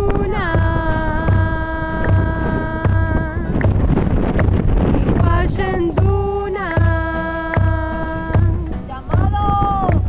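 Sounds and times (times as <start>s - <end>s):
barrel drum beating: 0.0s - 10.0s.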